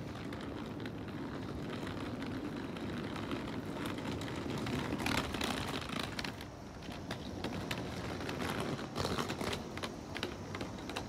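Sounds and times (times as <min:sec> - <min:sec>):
train clicks and rattles: 0:00.0 - 0:11.0
train running: 0:00.0 - 0:11.0.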